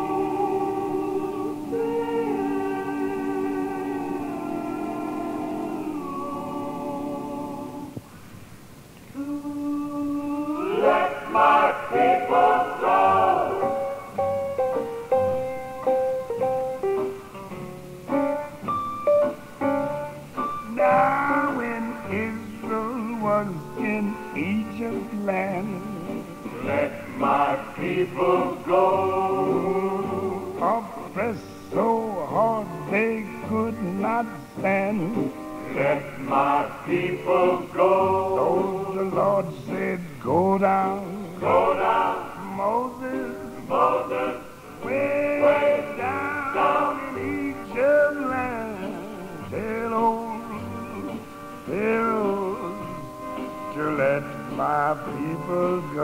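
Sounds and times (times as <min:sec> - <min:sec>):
man singing with instruments: 0:20.4 - 0:56.0.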